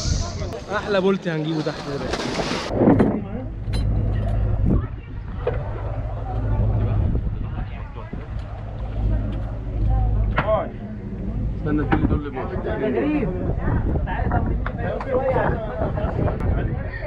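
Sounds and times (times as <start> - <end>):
people talking: 0.0 - 2.4, 4.2 - 17.0
boat engine idling: 3.2 - 12.8.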